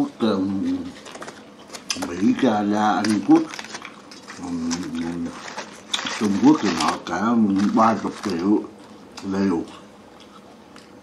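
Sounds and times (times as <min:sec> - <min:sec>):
paper towel crinkling: 0:00.4 - 0:09.0.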